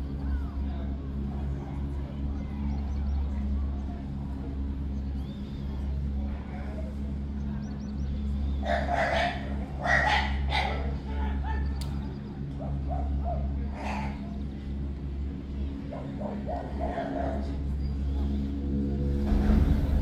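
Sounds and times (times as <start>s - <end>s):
gondola lift machinery hum: 0.0s - 20.0s.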